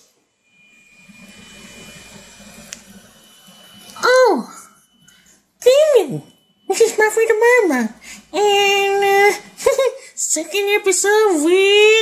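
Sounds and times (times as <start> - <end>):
low hum: 0.0 - 10.1
thin high whine: 0.0 - 12.0.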